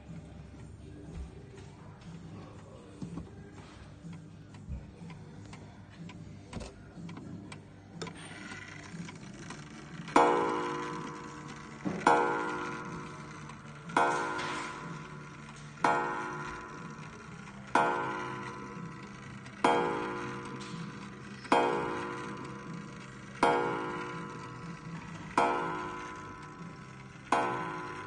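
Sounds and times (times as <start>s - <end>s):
clock mechanism clicks: 1.6s - 28.0s
clock gong striking: 10.0s - 28.0s.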